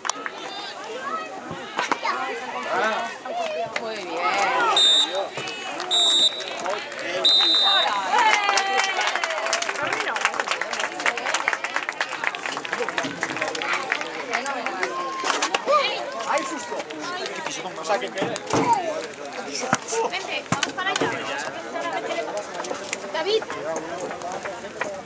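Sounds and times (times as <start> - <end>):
referee's whistle blasts: 4.7 - 5.3, 5.9 - 6.6, 7.2 - 8.0.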